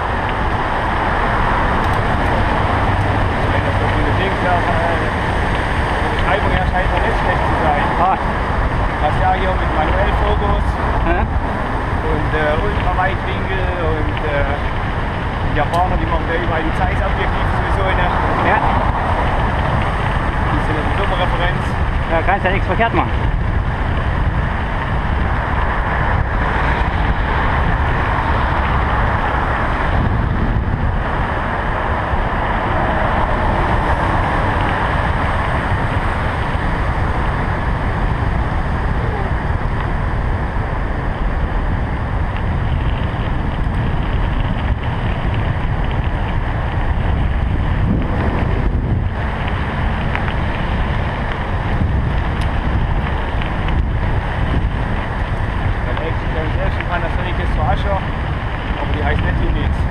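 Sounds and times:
tyres rumbling on gravel: 0.0 - 59.9
wind buffeting microphone: 0.0 - 59.9.

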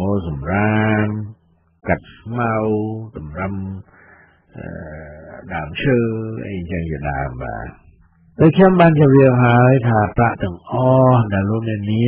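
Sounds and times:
man reading narration: 0.0 - 12.0.

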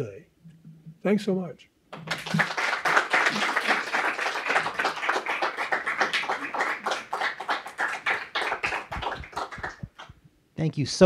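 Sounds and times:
audience applauding: 1.9 - 10.2.

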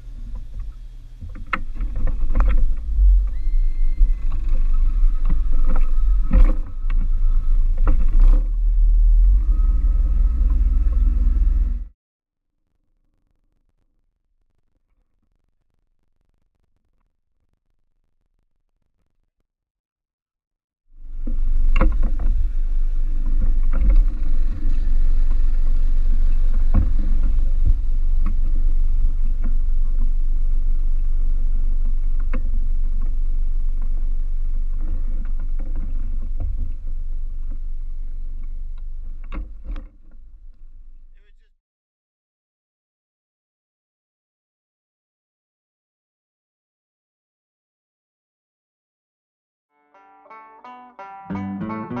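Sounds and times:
low rumble: 0.0 - 11.9, 21.0 - 41.2
thin steady whine: 0.0 - 11.9.

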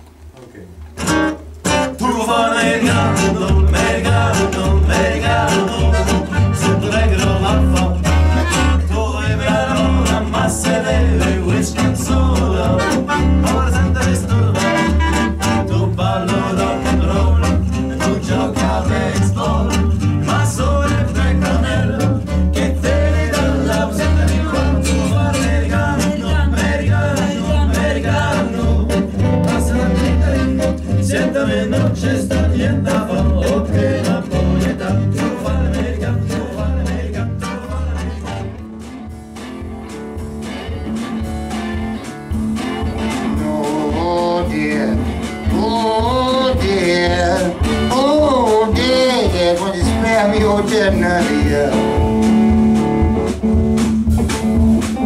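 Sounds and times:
acoustic band playing: 0.0 - 55.0
plucked double bass: 0.9 - 55.0.

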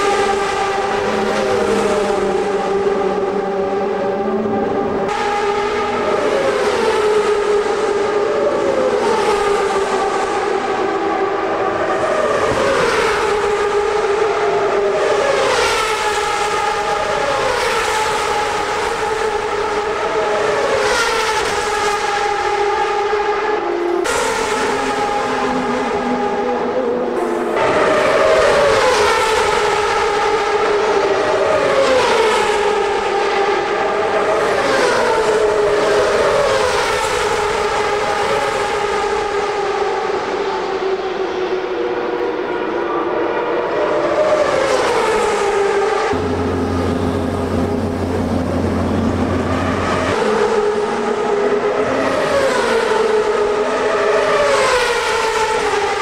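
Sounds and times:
steady engine tone: 0.0 - 8.6, 45.8 - 52.0
race cars passing at speed: 0.0 - 56.0.

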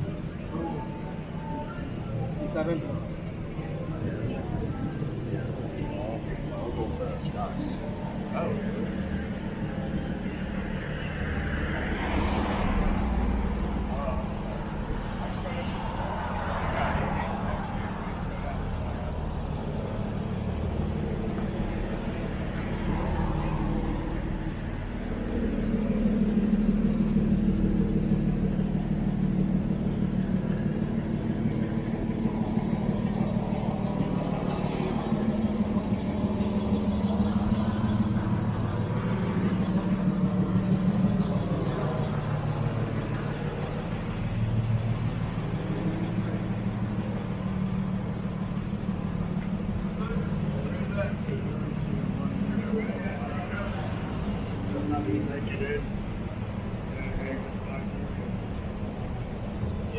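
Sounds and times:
vehicle engine hum: 0.0 - 59.9
voices of passers-by: 0.0 - 59.9.

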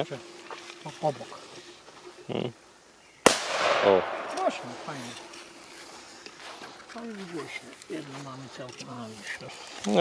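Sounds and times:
low voice murmuring: 2.2 - 2.6
firecracker bang echo: 3.2 - 5.1.

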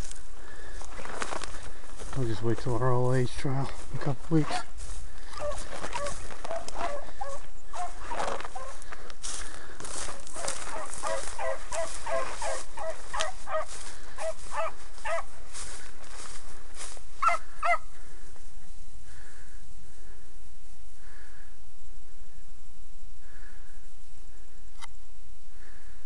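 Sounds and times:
dry brush rustling: 0.0 - 18.9
hounds baying: 4.4 - 9.1, 10.0 - 15.7, 17.2 - 18.0.

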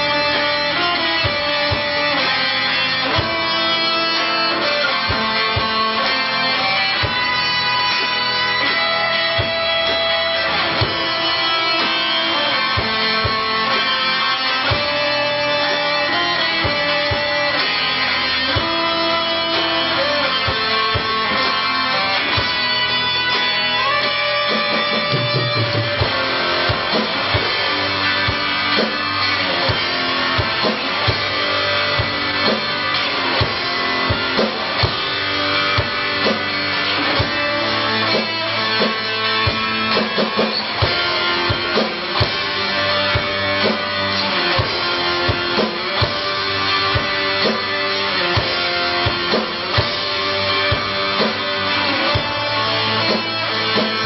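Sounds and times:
held lead guitar notes: 0.0 - 54.0
rock band playing blues: 0.0 - 54.0
drum hits: 24.5 - 37.4.

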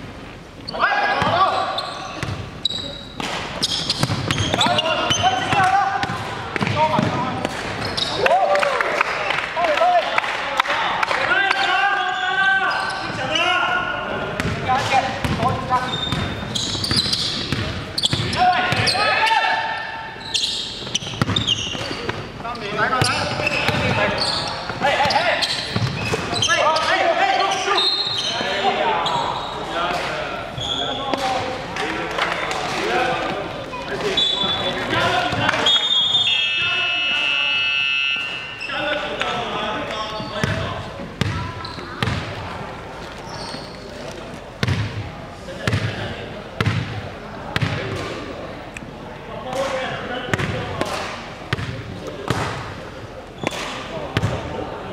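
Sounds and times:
players calling out: 0.6 - 44.7
short high shoe squeaks: 1.4 - 5.5, 7.8 - 8.2, 12.0 - 13.6, 15.8 - 19.1, 20.2 - 29.6, 30.6 - 31.2, 38.2 - 39.2, 41.6 - 42.0, 43.2 - 44.0
basketball bouncing on wooden court: 2.2 - 2.4, 3.6 - 8.1, 14.4 - 18.9, 20.8 - 22.2, 24.7 - 26.2, 40.2 - 42.4, 44.6 - 45.0, 45.7 - 46.0, 46.6 - 47.0, 47.6 - 47.9, 50.3 - 50.6, 51.5 - 52.6, 54.2 - 54.4.

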